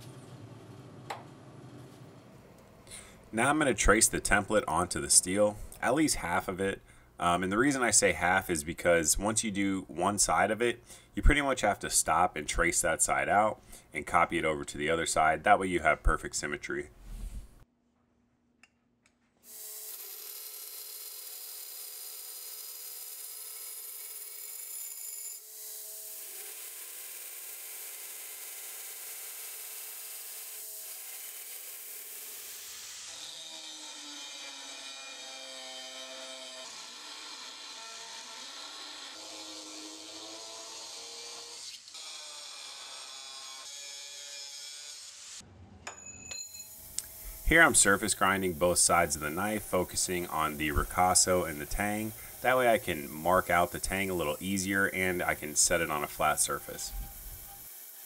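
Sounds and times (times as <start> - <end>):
belt grinder grinding steel: 19.5 - 45.4, 46.4 - 58.0
motor tones: 55.8 - 58.0.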